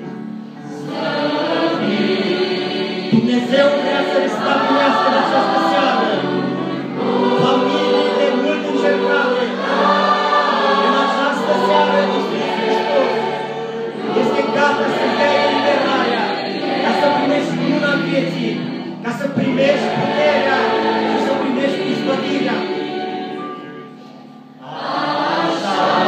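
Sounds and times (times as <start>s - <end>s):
choir singing a gospel song: 0.0s - 26.0s.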